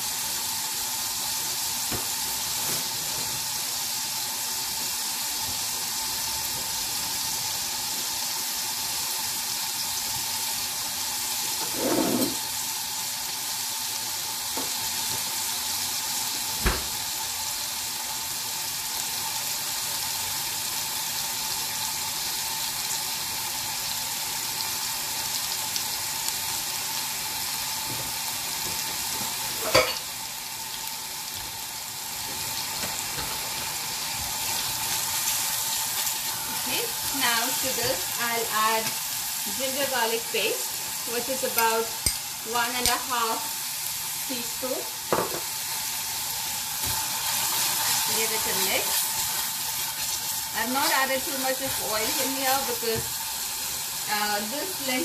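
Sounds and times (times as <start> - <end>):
onion sizzling in oil: 0.0 - 55.0.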